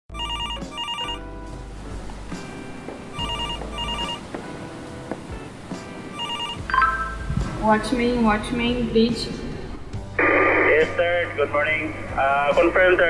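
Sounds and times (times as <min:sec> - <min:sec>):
telephone ringing: 0:00.1 - 0:01.3, 0:03.1 - 0:04.3, 0:06.1 - 0:07.2.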